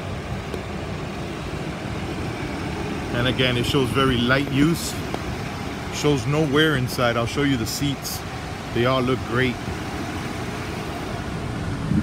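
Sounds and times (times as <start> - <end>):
air conditioning running: 0.0 - 12.0
diesel engine idling: 0.0 - 12.0.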